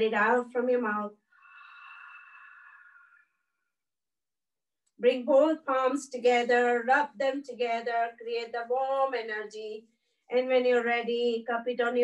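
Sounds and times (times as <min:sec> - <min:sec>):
woman exhaling through the mouth: 0:01.4 - 0:03.3.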